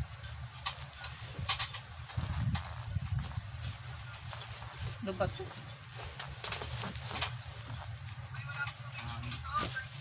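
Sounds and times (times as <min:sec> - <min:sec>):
low steady hum: 0:00.0 - 0:10.0
bubble wrap handled: 0:00.6 - 0:08.7, 0:09.4 - 0:10.0.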